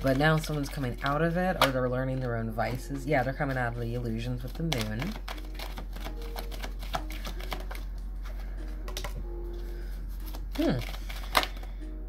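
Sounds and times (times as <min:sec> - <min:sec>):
cards being shuffled: 0:04.3 - 0:11.9
card snap: 0:10.3 - 0:11.7.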